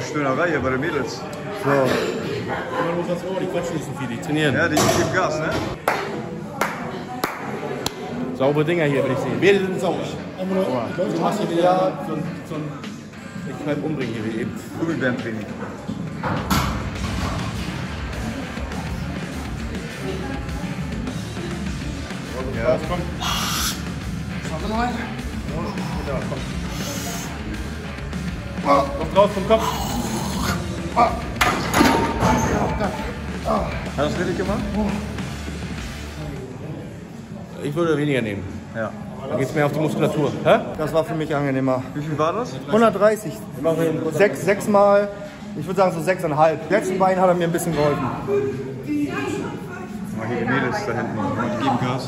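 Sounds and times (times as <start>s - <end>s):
forceful noisy breath: 23.1s - 24.0s, 25.7s - 27.6s.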